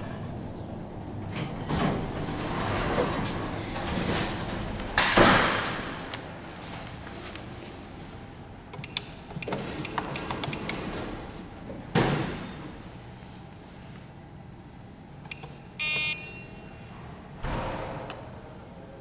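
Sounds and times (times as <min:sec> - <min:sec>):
short electronic beep: 0:15.8 - 0:16.7.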